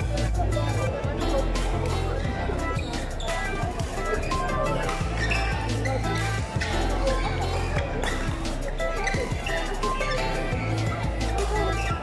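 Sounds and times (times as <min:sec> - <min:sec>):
bass line: 0:00.0 - 0:12.0
music with steady beat: 0:00.0 - 0:12.0.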